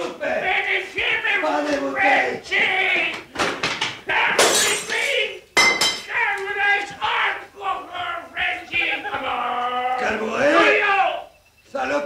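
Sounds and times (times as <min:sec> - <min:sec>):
men shouting: 0:00.0 - 0:03.3, 0:04.0 - 0:05.4, 0:06.0 - 0:11.4
glass breaking: 0:04.4 - 0:06.1.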